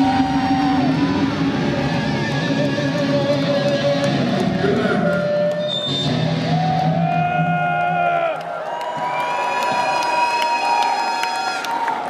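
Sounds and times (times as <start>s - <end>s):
electric guitar feedback: 0.0s - 7.8s
crowd cheering and whooping: 0.0s - 12.0s.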